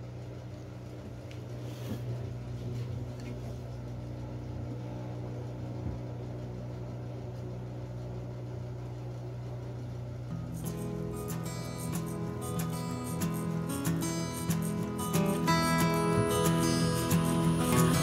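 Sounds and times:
low mechanical hum: 0.0 - 18.0
acoustic guitar strumming: 10.3 - 18.0.

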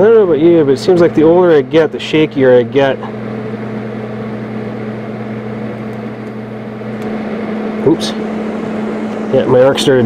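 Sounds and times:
cooling fan: 0.0 - 10.0
welder electrical hum: 0.0 - 10.0.

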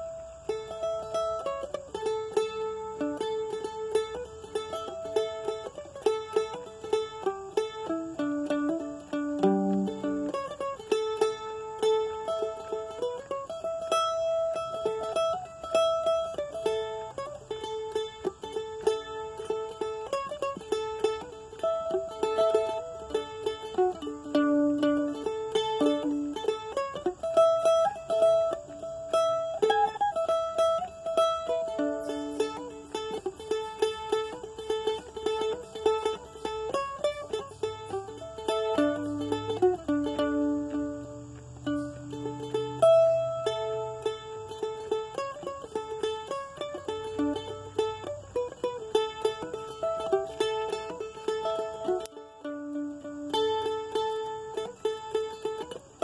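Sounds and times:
mandolin melody: 0.0 - 56.0.

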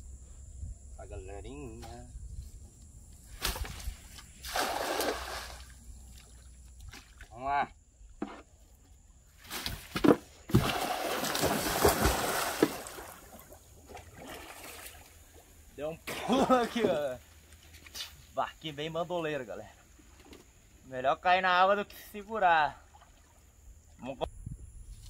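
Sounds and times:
loud splash: 4.4 - 5.7, 10.5 - 13.4
water churning and sloshing: 4.4 - 7.4, 9.7 - 17.9.

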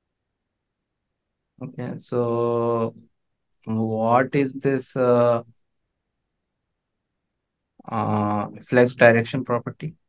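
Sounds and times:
man speaking: 1.6 - 3.0, 3.7 - 5.4, 7.8 - 10.0.

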